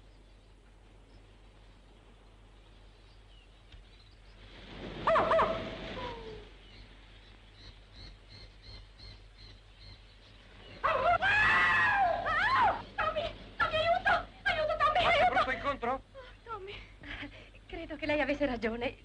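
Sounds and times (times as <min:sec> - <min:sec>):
animal falling cry: 0:10.8 - 0:12.8.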